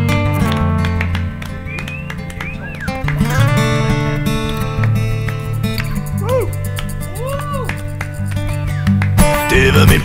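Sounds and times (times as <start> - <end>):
acoustic guitar strummed and picked: 0.0 - 10.0.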